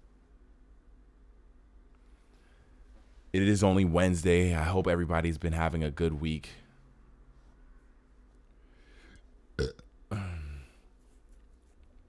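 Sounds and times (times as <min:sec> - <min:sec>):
man burping: 0:09.6 - 0:10.8.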